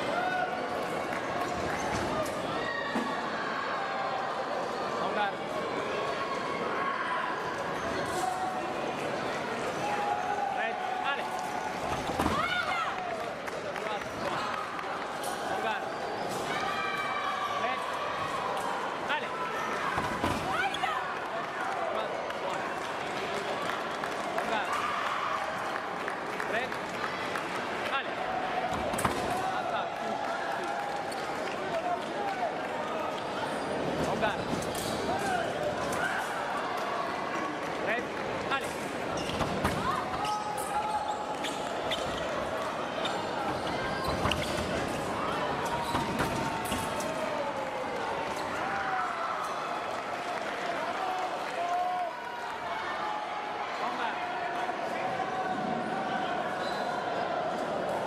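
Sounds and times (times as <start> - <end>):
shoes squeaking and thudding: 43.0 - 45.0.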